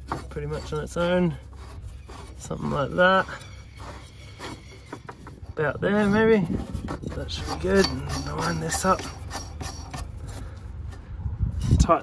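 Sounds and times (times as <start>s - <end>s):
metallic clicks and scrapes: 0.0s - 11.0s.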